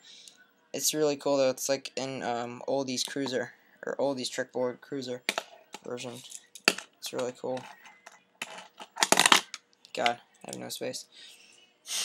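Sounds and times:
small objects clattering on desk: 5.3 - 10.6.

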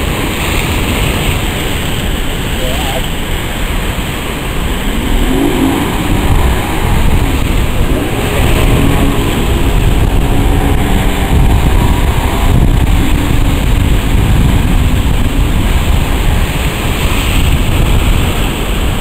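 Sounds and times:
outboard motors running: 0.0 - 19.0
surf rushing: 0.0 - 19.0
wind buffeting microphone: 0.0 - 19.0.

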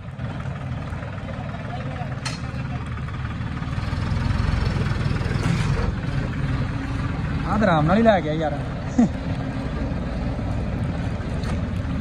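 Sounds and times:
tractor diesel engine under load: 0.0 - 12.0.

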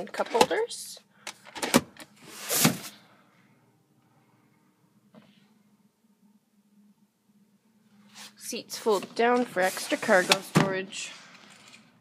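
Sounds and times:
rubbing sound: 8.1 - 10.5.

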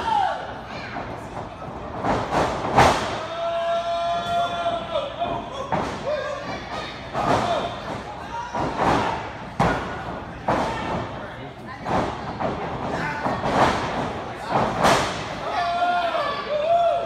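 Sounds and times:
people shouting: 3.1 - 9.3, 15.4 - 17.0.

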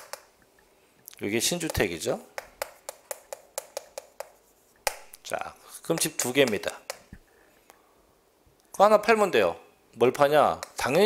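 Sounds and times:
chalk tapping on chalkboard: 1.5 - 5.2, 5.9 - 7.2.

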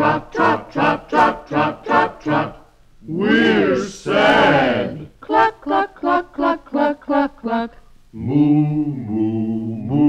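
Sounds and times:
chorus chanting rhythmic syllables: 0.0 - 10.0.

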